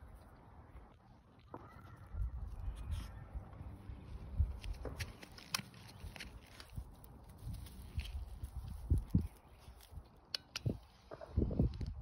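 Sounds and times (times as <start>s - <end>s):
footsteps on dry grass: 2.6s - 10.2s.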